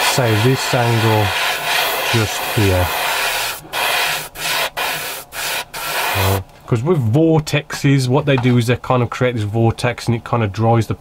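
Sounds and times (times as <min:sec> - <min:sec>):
airbrush spraying paint: 0:00.0 - 0:06.4.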